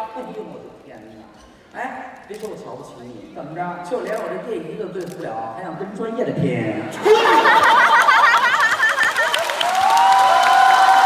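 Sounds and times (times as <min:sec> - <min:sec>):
audience cheering: 0:07.0 - 0:11.0
audience clapping: 0:07.5 - 0:11.0.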